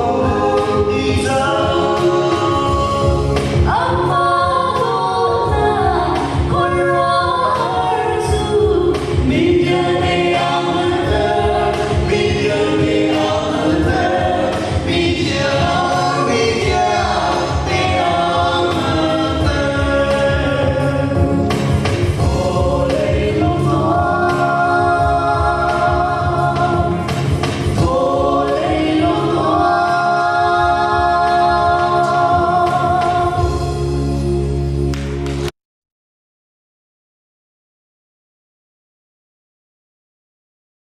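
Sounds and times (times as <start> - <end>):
voices singing gospel song: 0.0 - 34.4
instrumental accompaniment: 0.0 - 35.5.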